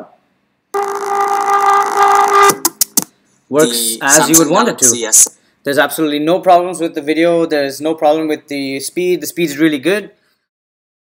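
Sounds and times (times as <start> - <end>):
electronic chord: 0.8 - 2.6.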